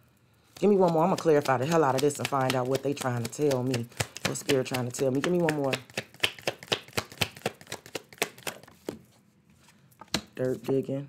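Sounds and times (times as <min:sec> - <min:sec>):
cards being shuffled: 0:00.5 - 0:09.1.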